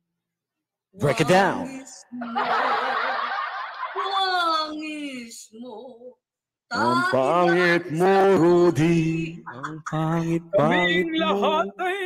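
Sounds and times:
person laughing: 9.4 - 12.0.

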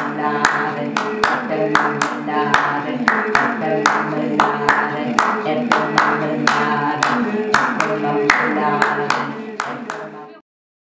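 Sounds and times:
hand claps: 0.0 - 10.2
group of voices singing: 0.0 - 10.4.

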